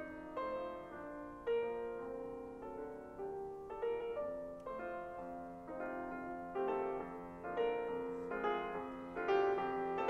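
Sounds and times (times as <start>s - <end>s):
grand piano chords: 0.0s - 10.0s.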